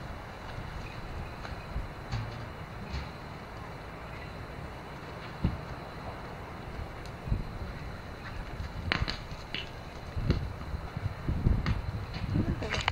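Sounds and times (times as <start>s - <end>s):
storm wind buffeting microphone: 0.0s - 12.9s.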